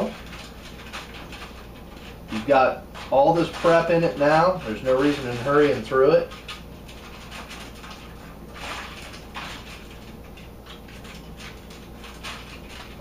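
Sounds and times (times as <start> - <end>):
foil rustling and crinkling: 0.0 - 13.0
steady low hum: 0.0 - 13.0.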